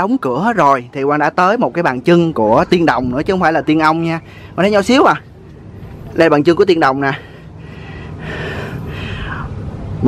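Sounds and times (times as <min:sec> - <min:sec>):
long breath out: 0:07.2 - 0:09.6.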